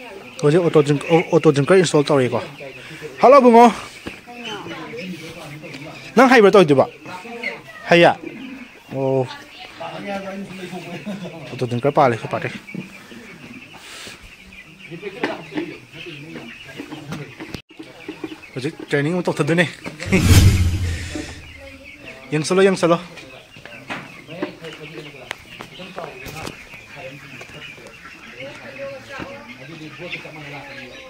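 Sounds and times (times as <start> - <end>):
faint people's voices: 0.0 - 13.5, 21.8 - 31.0
chicks peeping: 0.0 - 18.8, 23.1 - 31.0.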